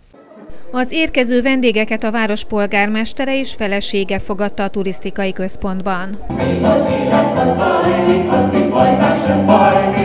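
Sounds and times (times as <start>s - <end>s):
mixed choir singing in harmony: 0.0s - 0.5s, 6.3s - 10.0s.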